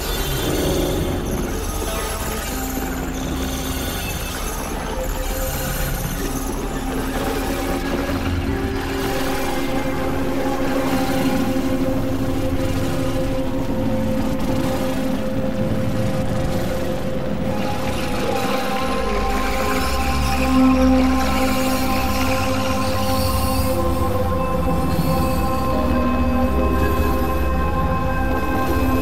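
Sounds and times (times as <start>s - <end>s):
synthesizer drone tones: 0.0s - 29.0s.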